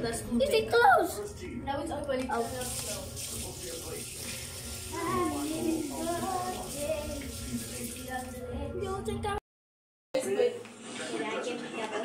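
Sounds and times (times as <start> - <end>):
indistinct sing-song voices: 2.3 - 9.4.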